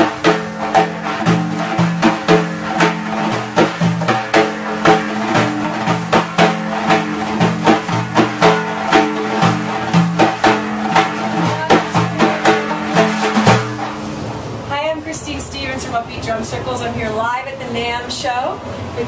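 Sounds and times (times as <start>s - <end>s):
frame drums struck by hand: 0.0s - 14.6s.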